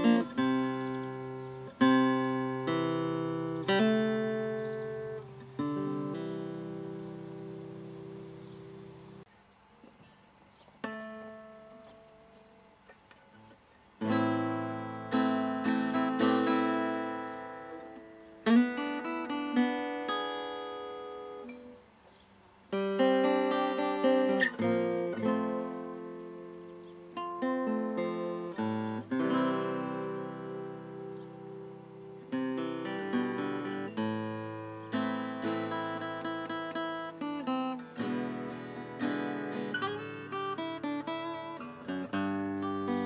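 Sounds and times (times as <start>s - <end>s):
acoustic guitar chords: 0.0s - 43.0s.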